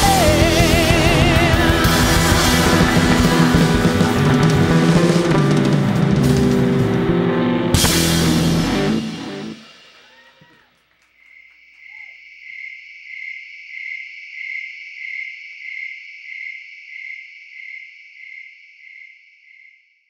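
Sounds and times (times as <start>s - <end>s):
night insects trilling: 11.2s - 20.0s.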